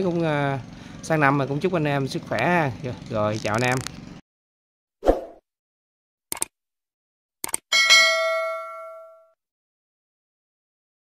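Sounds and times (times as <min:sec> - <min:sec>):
short clicks: 0:06.3 - 0:06.5, 0:07.4 - 0:07.6
metallic bell-like ding: 0:07.7 - 0:09.4.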